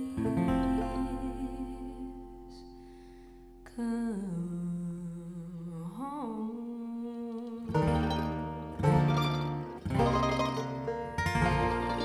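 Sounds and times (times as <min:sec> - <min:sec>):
plucked string instruments strumming: 0:00.0 - 0:02.6, 0:07.4 - 0:12.0
person singing blues melody: 0:00.0 - 0:02.7.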